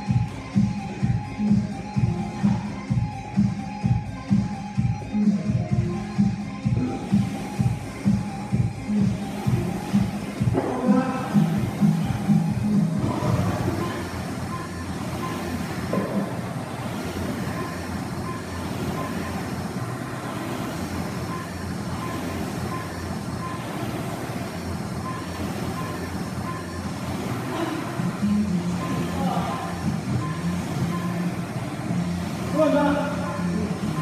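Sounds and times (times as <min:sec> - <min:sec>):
background music: 0:00.0 - 0:34.0
rowing machine fan whirring: 0:00.0 - 0:34.0.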